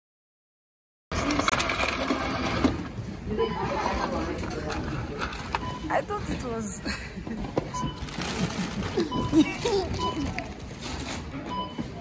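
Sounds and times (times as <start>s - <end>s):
shop voices: 1.1s - 12.0s.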